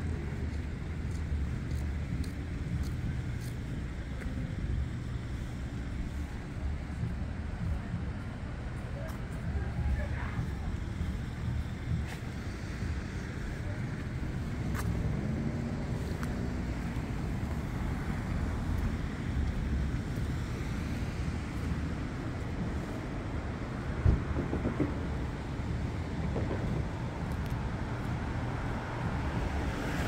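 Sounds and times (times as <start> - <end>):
distant road traffic rumble: 0.0 - 30.0.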